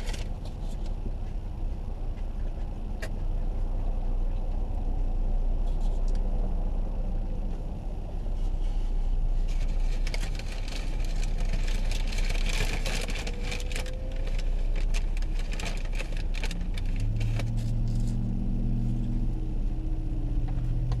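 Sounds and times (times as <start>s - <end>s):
clicks and rustles: 0.0s - 1.4s, 9.4s - 18.2s
low engine hum: 0.0s - 21.0s
road noise inside a car: 0.0s - 21.0s.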